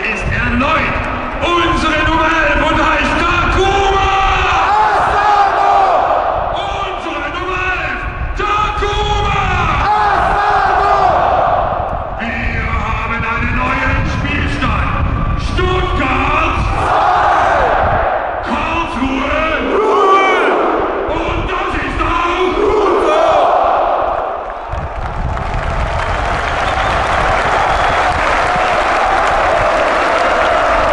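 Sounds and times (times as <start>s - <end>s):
crowd shouting and chanting: 0.0s - 12.5s, 15.8s - 24.9s
crowd cheering and applause: 23.1s - 30.9s.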